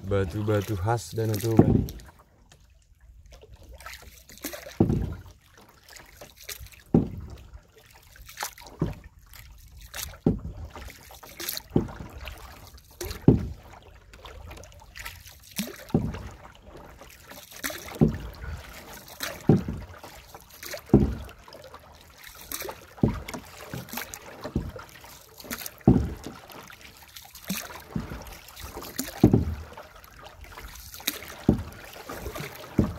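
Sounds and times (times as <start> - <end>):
paddle splashing and knocking: 0.0 - 32.9
water lapping and trickling: 0.0 - 32.9.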